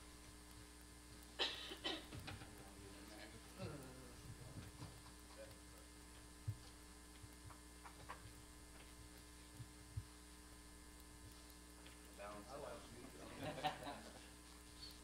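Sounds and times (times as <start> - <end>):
steady electrical hum: 0.0 - 15.0
quiet voices murmuring: 2.5 - 4.7.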